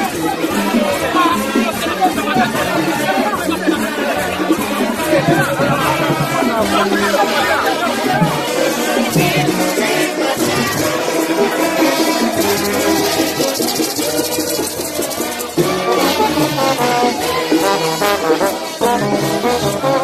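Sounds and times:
crowd voices: 0.0s - 20.0s.

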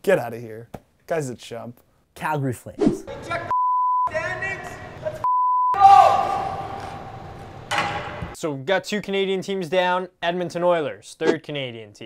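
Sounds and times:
censor bleeps: 3.5s - 4.1s, 5.2s - 5.8s.

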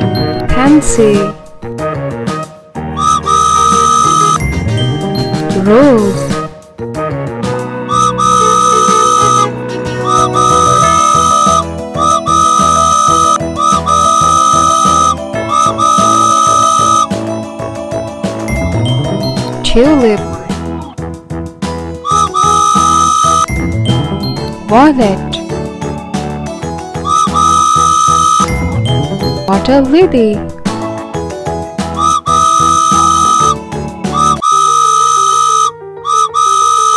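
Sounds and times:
children's background music: 0.0s - 36.9s
cartoon train whistle tooting: 3.0s - 4.4s, 7.9s - 17.1s, 22.1s - 23.5s, 27.1s - 28.6s, 32.0s - 36.9s.

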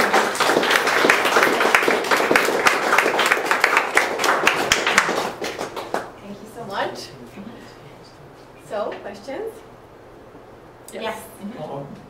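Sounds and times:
audience applauding: 0.0s - 6.2s.

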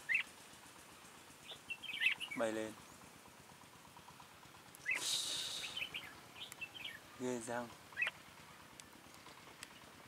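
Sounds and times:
birds chirping: 0.0s - 10.0s
loud high hiss: 4.8s - 6.4s.

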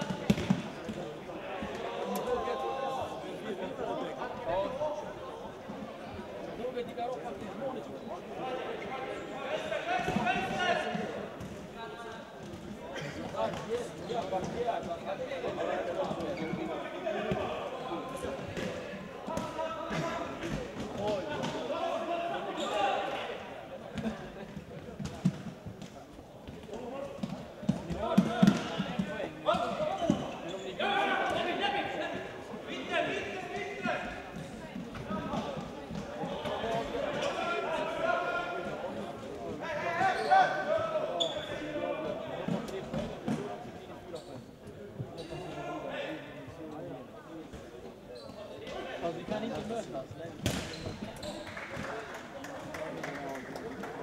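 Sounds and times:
voices calling and talking: 0.0s - 54.0s.

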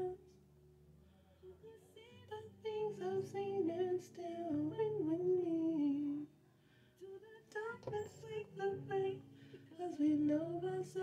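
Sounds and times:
woman singing slow melody: 0.0s - 0.4s, 1.5s - 6.3s, 7.0s - 11.0s.

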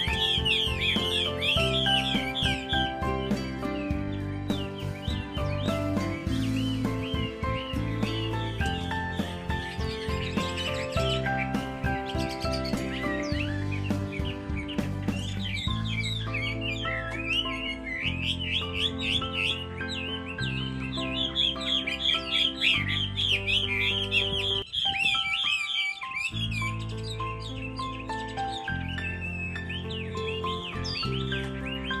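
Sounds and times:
background music: 0.0s - 32.0s
bird warbling song: 0.0s - 32.0s.

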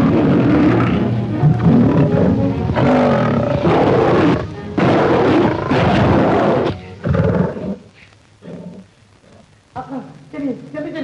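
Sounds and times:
film background music: 0.0s - 7.0s
tiger roaring: 0.0s - 9.4s.

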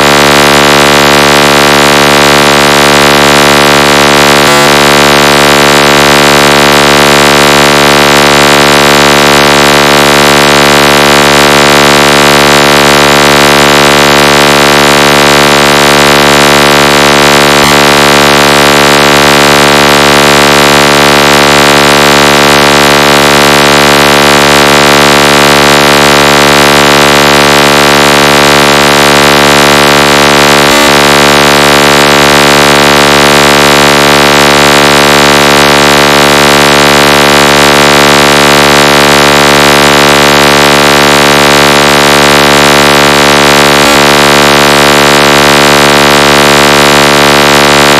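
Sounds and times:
distorted electronic buzzing tone: 0.0s - 47.9s.

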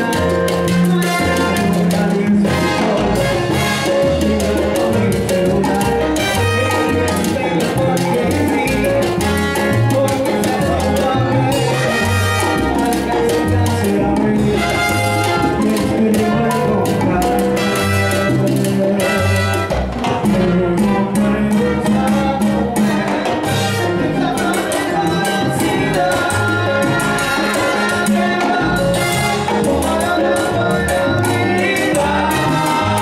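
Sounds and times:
bass line: 0.0s - 33.0s
bright melodic riff: 0.0s - 33.0s
keyboard: 0.0s - 33.0s
percussion: 0.0s - 33.0s.

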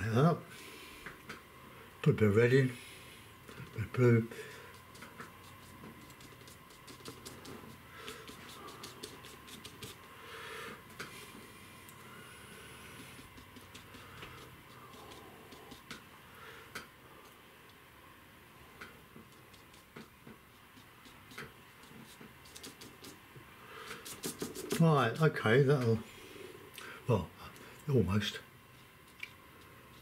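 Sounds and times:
scratchy brush strokes: 2.8s - 16.1s, 18.8s - 26.0s, 28.6s - 30.0s
paintbrush tapping: 4.4s - 10.1s, 12.8s - 16.1s, 18.8s - 23.2s, 23.9s - 25.2s.

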